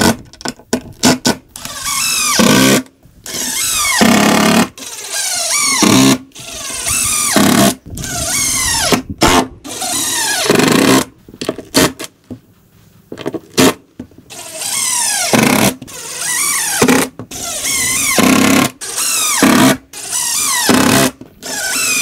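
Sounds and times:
impact driver driving screws: 0.9 - 12.1, 13.5 - 22.0.

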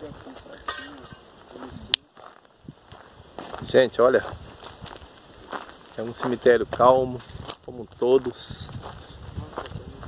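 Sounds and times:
people talking: 0.0 - 2.1, 6.0 - 8.7, 9.4 - 10.0.

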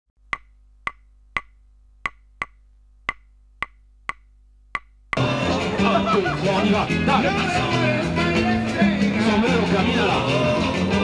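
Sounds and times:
wooden percussion clicks: 0.3 - 5.2.

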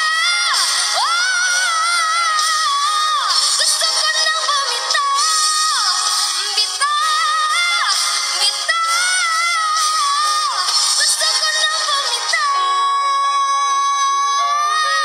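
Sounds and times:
woman singing into a microphone: 0.0 - 15.0.

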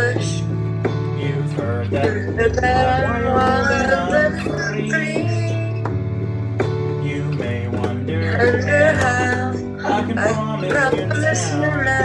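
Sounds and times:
electronic keyboard music: 0.0 - 12.0.

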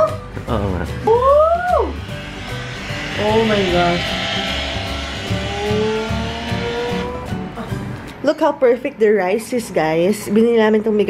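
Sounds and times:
car engine revving: 1.8 - 7.6.

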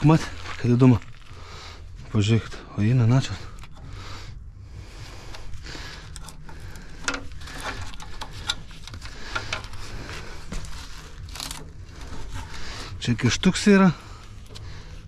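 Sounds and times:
crinkling and rustling: 0.0 - 2.6, 4.9 - 15.0
steady low hum: 0.0 - 15.0.

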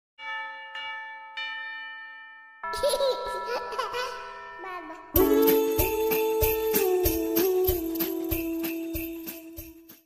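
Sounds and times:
bell ringing: 0.2 - 10.0.

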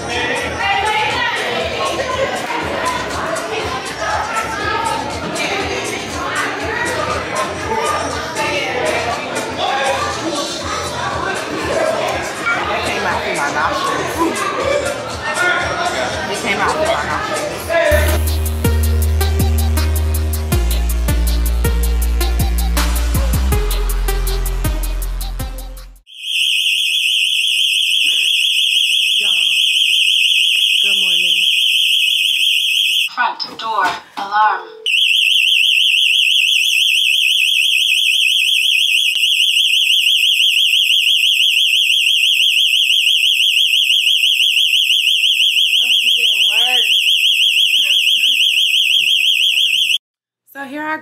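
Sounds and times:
voices: 0.0 - 18.2, 28.0 - 31.9, 45.7 - 47.0
alarm siren warbling: 26.1 - 33.1, 34.9 - 50.0.

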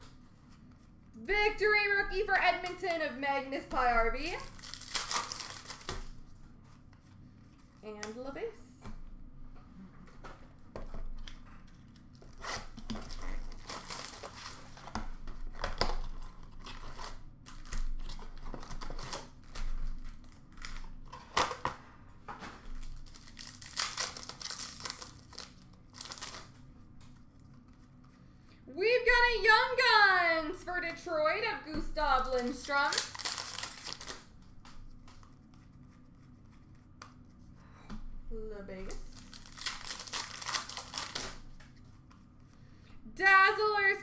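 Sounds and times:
card pack wrappers tearing: 4.4 - 6.2, 11.9 - 21.6, 22.8 - 26.6, 32.0 - 34.3, 39.0 - 41.5
cards shuffled and rustling: 4.4 - 8.2, 10.2 - 21.8, 22.4 - 28.2, 31.7 - 37.5, 39.0 - 42.6.

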